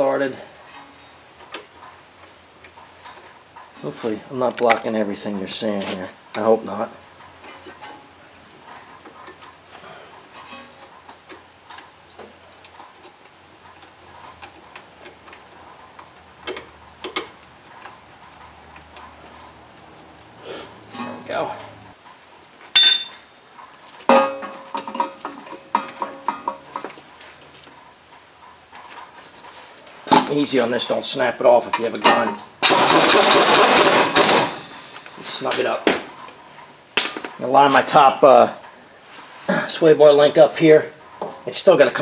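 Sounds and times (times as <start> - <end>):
sharp ringing metal clink: 22.8 - 23.3, 37.0 - 37.6.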